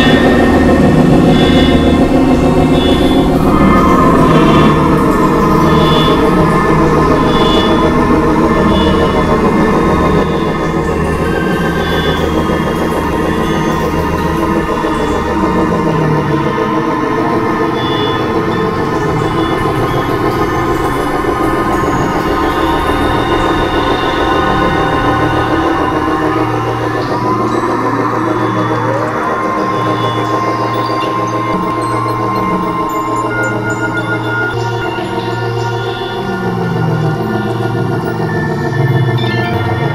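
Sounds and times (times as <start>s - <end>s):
electronic synthesizer drones: 0.0s - 39.9s
low pulsing hum: 0.0s - 39.9s
rising pitch glides: 0.0s - 39.9s
steady higher tone: 0.0s - 39.9s.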